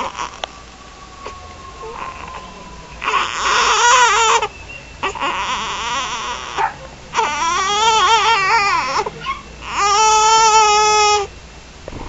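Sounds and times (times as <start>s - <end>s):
baby crying: 0.0s - 11.3s.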